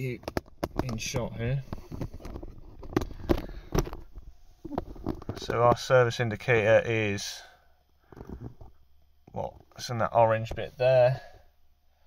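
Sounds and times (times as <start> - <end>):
camera handling knocks and rubs: 1.6 - 5.6.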